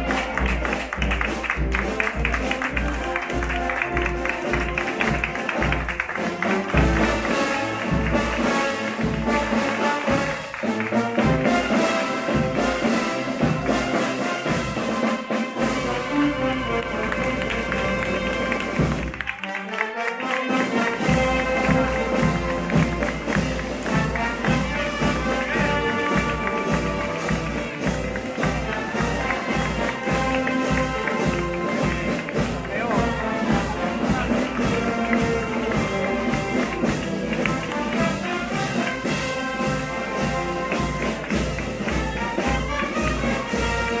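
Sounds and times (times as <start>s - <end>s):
steady drum beat: 0.0s - 19.3s, 20.4s - 44.0s
wind band playing a march: 0.0s - 44.0s.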